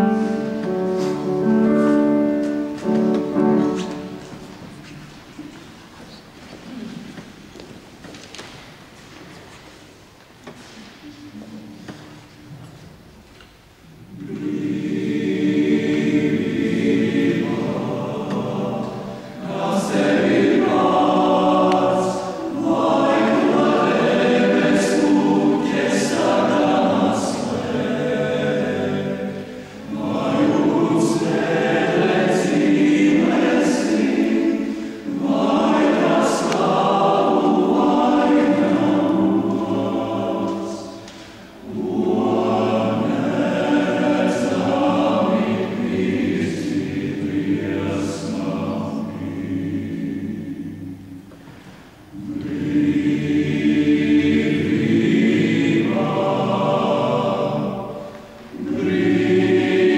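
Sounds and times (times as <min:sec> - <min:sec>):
choir singing: 0:00.0 - 0:05.6, 0:14.0 - 0:59.9.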